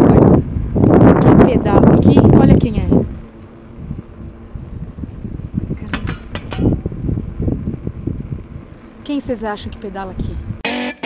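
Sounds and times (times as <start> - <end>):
low rumble of wind and road: 0.0 - 10.6
bicycle clicks and rattles: 3.0 - 9.1.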